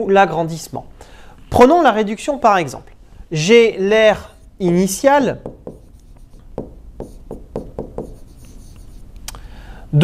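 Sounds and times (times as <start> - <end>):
pen tapping and rubbing on screen: 5.4 - 9.1.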